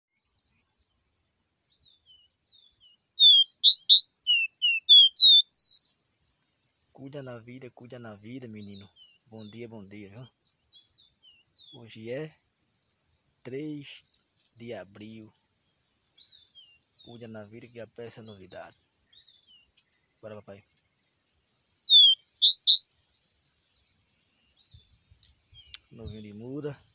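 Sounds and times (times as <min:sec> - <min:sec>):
bird singing whistles: 0:01.8 - 0:05.9, 0:21.9 - 0:22.9.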